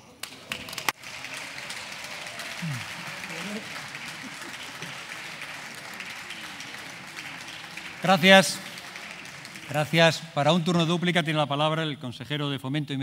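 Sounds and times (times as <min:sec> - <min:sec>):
hand clapping: 0:00.2 - 0:10.2
faint voices: 0:01.2 - 0:09.7.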